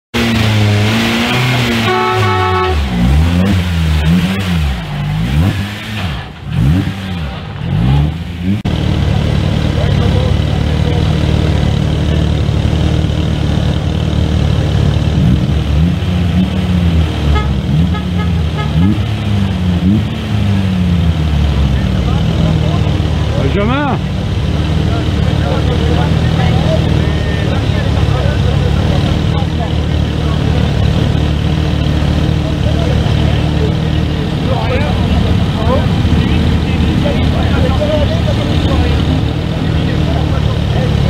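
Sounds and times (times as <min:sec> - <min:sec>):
horn blast: 0:00.1 - 0:08.0, 0:17.2 - 0:20.0
engines revving: 0:00.1 - 0:41.0.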